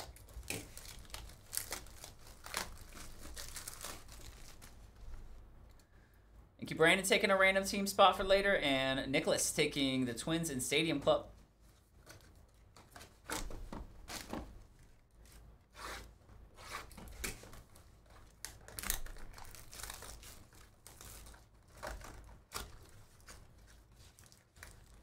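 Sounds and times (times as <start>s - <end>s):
cardboard ripping and rustling: 0.0s - 5.3s, 15.3s - 25.0s
foil wrapper crinkling: 0.0s - 5.4s, 17.6s - 25.0s.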